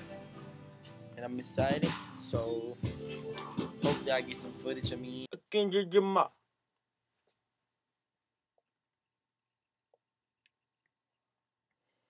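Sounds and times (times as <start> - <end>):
man's voice: 1.1 - 6.3.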